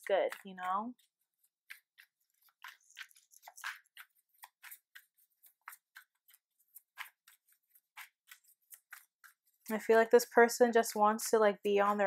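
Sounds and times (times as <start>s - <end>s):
cards flicking and scraping: 1.0s - 9.7s.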